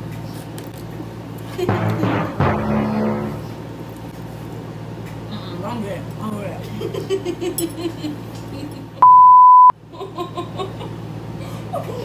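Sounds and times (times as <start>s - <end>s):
high censor bleep: 9.0s - 9.7s
people laughing: 10.0s - 12.0s.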